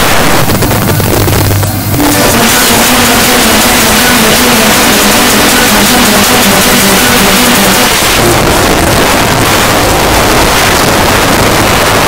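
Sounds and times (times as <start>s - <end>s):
loud even noise: 0.0s - 12.0s.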